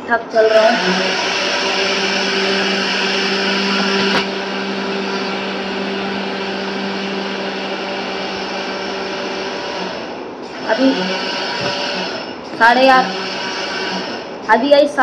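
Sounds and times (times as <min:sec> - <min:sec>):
appliance motor humming: 0:00.0 - 0:14.7.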